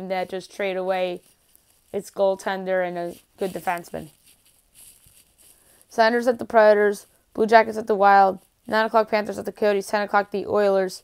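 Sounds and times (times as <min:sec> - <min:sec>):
woman speaking: 0:00.0 - 0:01.2, 0:02.0 - 0:04.1, 0:05.9 - 0:11.0
faint soft noise: 0:00.0 - 0:11.0.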